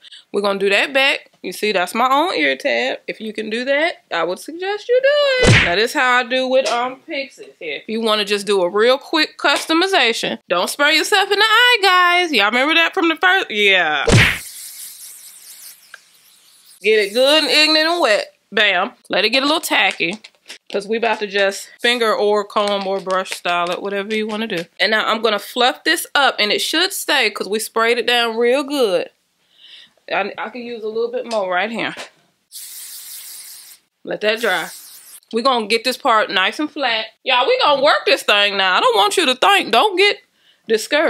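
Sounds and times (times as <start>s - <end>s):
aerosol spray can hissing: 14.2s - 17.4s, 32.5s - 35.2s.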